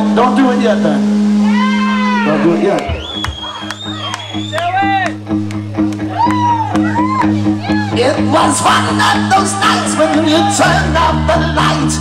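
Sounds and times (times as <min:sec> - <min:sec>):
live rock band playing: 0:00.0 - 0:12.0
voices calling: 0:01.4 - 0:05.2.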